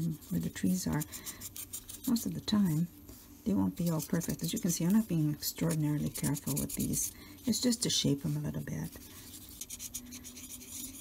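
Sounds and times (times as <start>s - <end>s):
stylus scratching paper: 0.0s - 11.0s.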